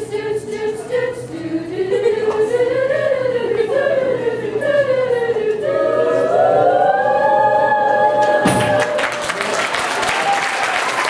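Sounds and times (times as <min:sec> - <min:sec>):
small choir singing a cappella: 0:00.0 - 0:09.2.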